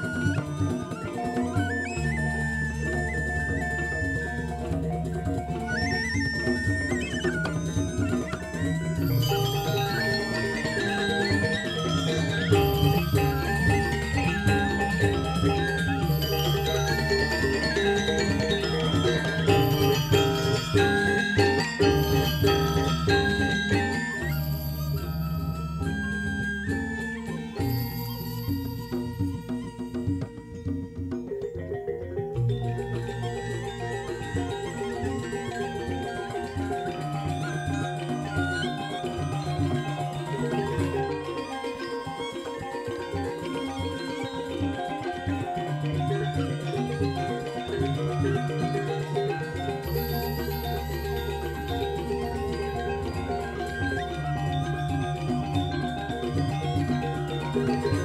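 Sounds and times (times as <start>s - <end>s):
bamboo flutes: 0.0s - 58.0s
hand drums: 0.0s - 58.0s
ringing bronze metallophones: 0.0s - 58.0s.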